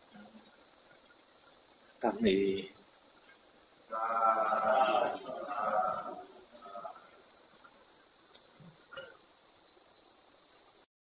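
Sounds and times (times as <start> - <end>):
steady high-pitched tone: 1.7 - 9.1
voice: 2.0 - 2.8, 3.9 - 7.0.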